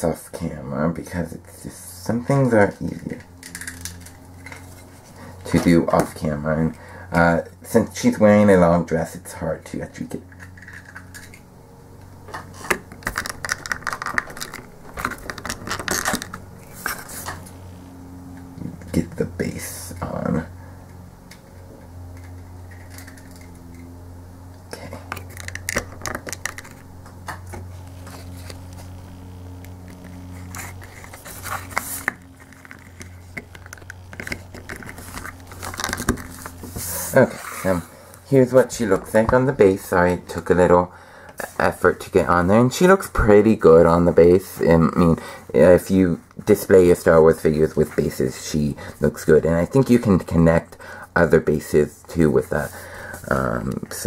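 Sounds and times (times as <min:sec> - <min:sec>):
steady low hum: 0:00.0 - 0:54.0
plastic clicks and scrapes: 0:12.4 - 0:17.4, 0:29.9 - 0:36.8
plastic figure clicking and rattling: 0:13.0 - 0:16.4.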